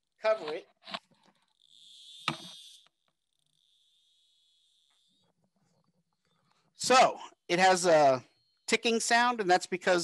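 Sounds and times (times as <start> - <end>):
high-pitched ticking buzz: 1.4 - 5.4, 8.2 - 9.0.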